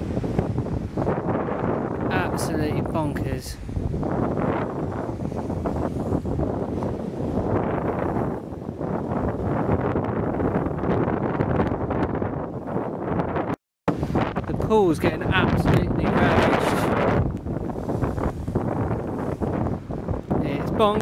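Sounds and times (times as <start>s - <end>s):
storm wind: 0.0s - 21.0s.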